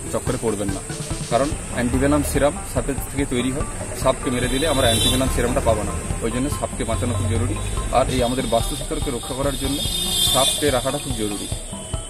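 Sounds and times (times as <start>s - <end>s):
man talking: 0.0s - 11.6s
steady high-pitched hiss: 0.0s - 12.0s.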